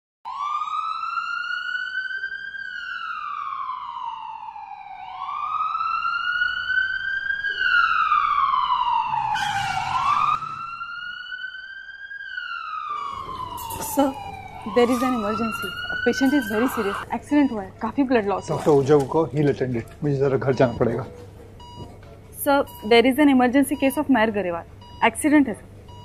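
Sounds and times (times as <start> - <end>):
ambulance siren wailing: 0.3 - 21.8.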